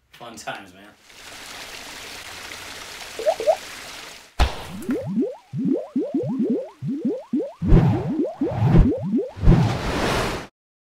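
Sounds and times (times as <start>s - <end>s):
rising bubbly pops: 3.2s - 3.6s, 4.4s - 9.4s.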